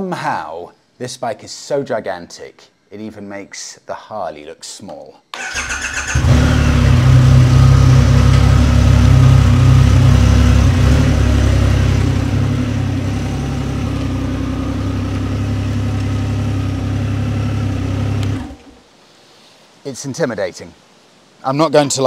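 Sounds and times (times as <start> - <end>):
motorcycle engine idling: 5.5 - 18.6.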